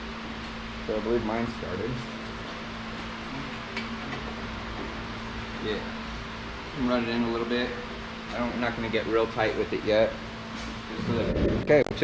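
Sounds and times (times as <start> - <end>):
mechanical hum: 0.0 - 12.0.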